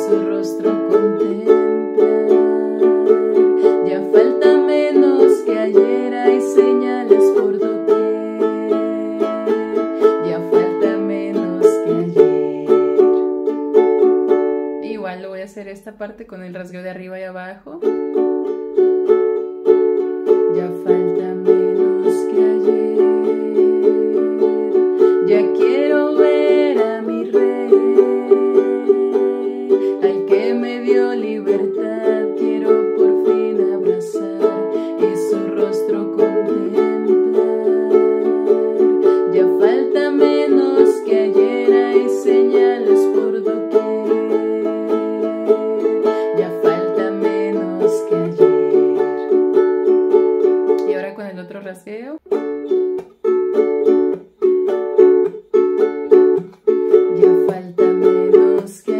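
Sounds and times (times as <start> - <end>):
ukulele strumming chords: 0.0 - 15.4, 17.7 - 51.6, 52.2 - 58.9.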